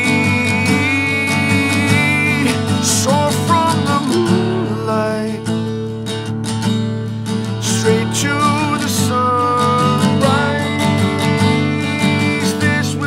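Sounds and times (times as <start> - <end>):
person singing: 0.0 - 5.5, 7.6 - 13.0
acoustic guitar strumming chords: 0.0 - 13.0
held melody line: 0.0 - 13.0.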